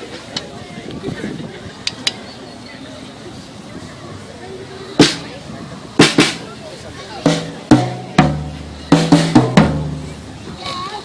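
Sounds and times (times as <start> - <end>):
drum kit played with sticks: 5.0 - 5.4, 6.0 - 6.5, 7.2 - 10.4.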